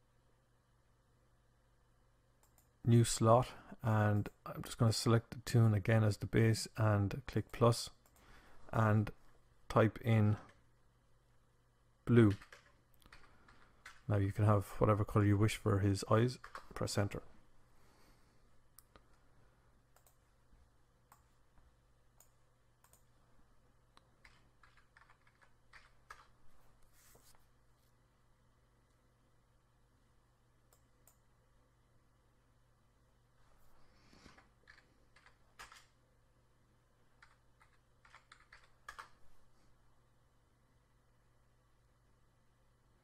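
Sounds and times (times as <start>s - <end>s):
low steady hum: 0.0s - 43.0s
computer keyboard keystrokes: 12.2s - 14.0s, 16.4s - 16.8s, 24.2s - 26.3s, 34.3s - 35.9s, 37.2s - 39.2s.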